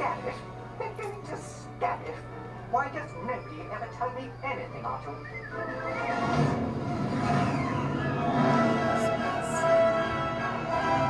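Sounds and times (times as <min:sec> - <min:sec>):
sustained music tones: 0:00.0 - 0:11.0
rumbling spaceship sound effect: 0:05.6 - 0:09.8.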